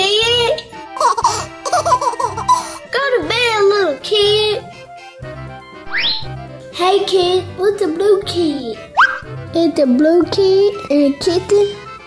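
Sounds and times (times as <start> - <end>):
child's voice: 0.0 - 0.7, 2.9 - 4.6, 6.8 - 8.9, 9.5 - 11.9
children's background music: 0.0 - 12.0.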